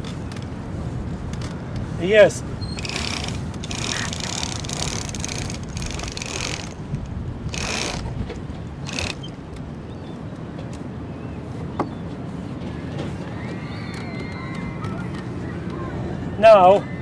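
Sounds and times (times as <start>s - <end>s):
wind rumble on microphone: 0.0s - 17.0s
rope rasping through pulleys: 2.8s - 6.9s, 7.5s - 8.2s, 8.8s - 9.4s.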